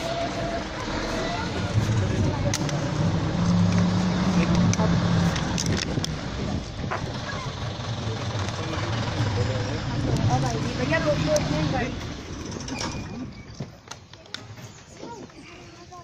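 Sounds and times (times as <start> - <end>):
vehicle engine idling: 0.0 - 13.4
voices talking: 0.0 - 16.0.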